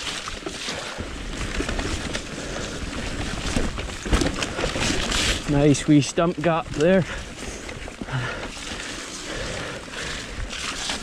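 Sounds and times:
bike knocks and rattles: 0.0s - 9.0s
bike tyres rushing on dirt trail: 0.0s - 11.0s.

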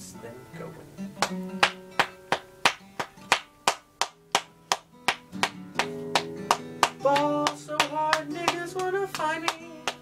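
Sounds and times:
acoustic guitar chords: 0.0s - 10.0s
sharp percussive hits: 1.2s - 8.3s.

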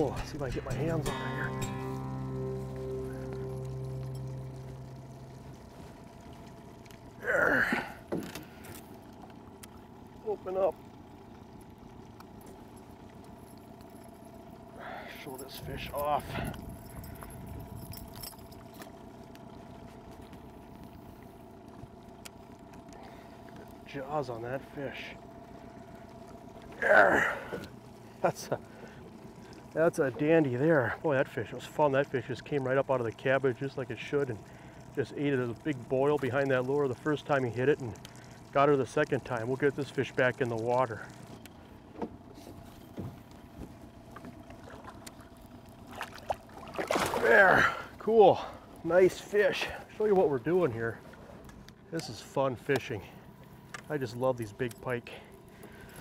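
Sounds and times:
boat motor humming: 0.0s - 56.0s
faint water sounds: 0.0s - 56.0s
faint clicks: 37.7s - 39.1s
light knocks against boat hull: 42.9s - 45.2s
fish splashing in water: 43.9s - 48.0s.

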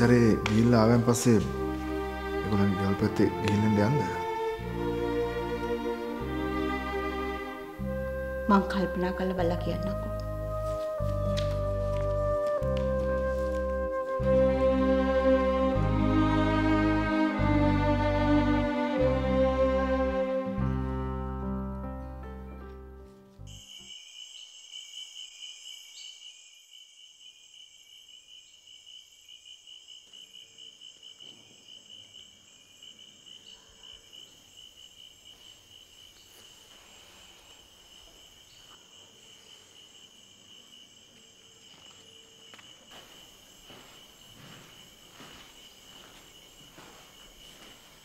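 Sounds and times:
crickets chirping: 0.0s - 17.5s, 23.5s - 48.0s
string music: 0.0s - 23.5s.

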